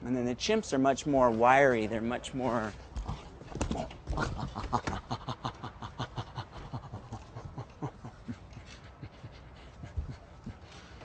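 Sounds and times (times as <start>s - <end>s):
man panting rapidly: 6.1s - 11.0s.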